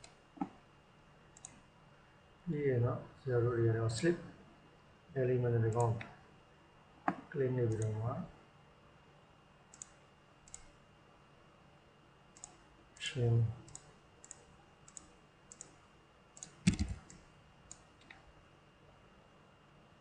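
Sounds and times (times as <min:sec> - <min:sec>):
computer mouse clicks: 0:01.4 - 0:01.6, 0:07.1 - 0:08.0, 0:09.7 - 0:10.8, 0:12.4 - 0:12.6, 0:13.7 - 0:15.8, 0:16.4 - 0:18.2.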